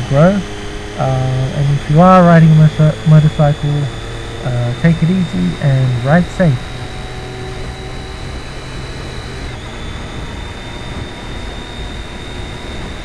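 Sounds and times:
motorcycle engine drone: 0:00.0 - 0:13.0
thin high whine: 0:00.0 - 0:13.0.

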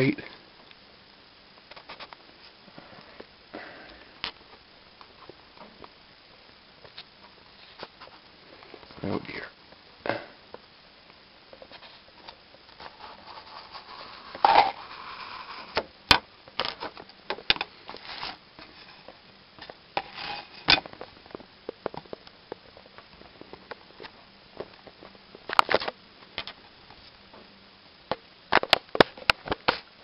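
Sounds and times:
scraping rub: 0:12.8 - 0:15.8, 0:20.0 - 0:20.7.

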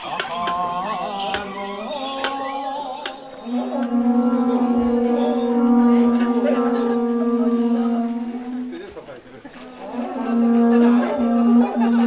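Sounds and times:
low horn-like tone: 0:00.9 - 0:12.0.

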